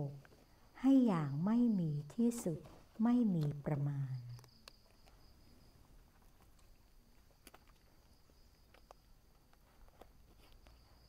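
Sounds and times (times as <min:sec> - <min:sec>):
cricket trilling: 0:00.0 - 0:11.0
person's voice: 0:00.8 - 0:04.4.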